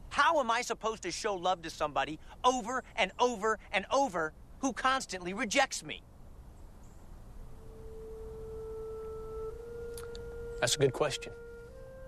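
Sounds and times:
held pure note: 7.5s - 12.0s.

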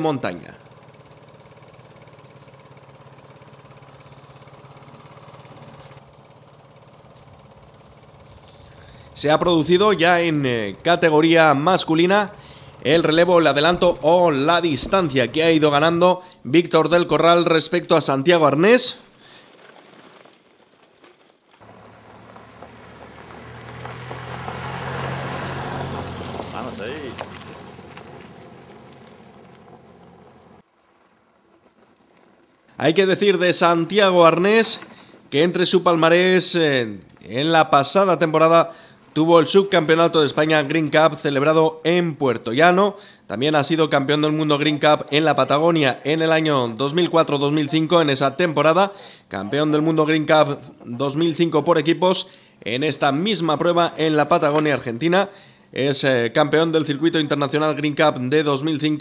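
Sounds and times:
motor engine running: 0.0s - 17.6s, 21.6s - 51.3s.

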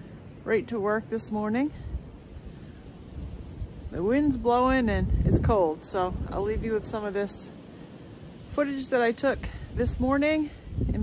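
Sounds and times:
wind buffeting microphone: 1.6s - 7.6s, 8.2s - 11.0s.

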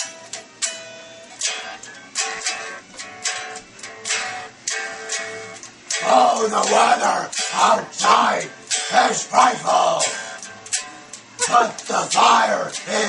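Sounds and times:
electric guitar strummed chords: 0.0s - 13.0s.

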